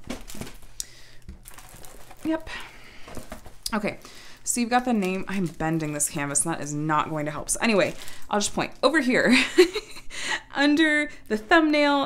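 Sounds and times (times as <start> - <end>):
plastic film crinkling: 0.0 - 9.7.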